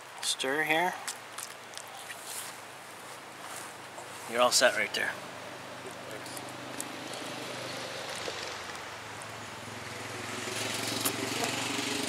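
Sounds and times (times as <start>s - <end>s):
steady outdoor hiss: 0.0s - 12.0s
soft wet scrapes: 1.4s - 4.4s.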